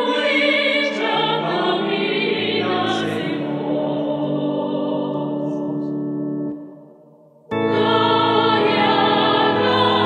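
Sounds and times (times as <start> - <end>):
choir singing a hymn: 0.0 - 6.8, 7.5 - 10.0
sustained accompaniment: 0.0 - 10.0.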